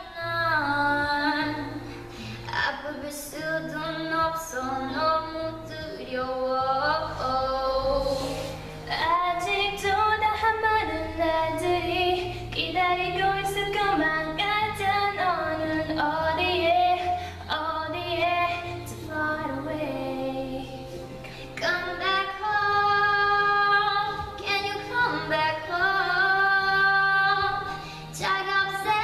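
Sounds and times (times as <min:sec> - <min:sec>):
young women singing a ballad: 0:00.0 - 0:29.0.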